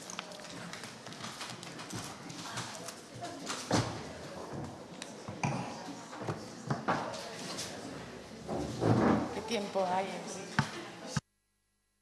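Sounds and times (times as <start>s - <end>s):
papers and objects handled on table: 0.0s - 9.3s.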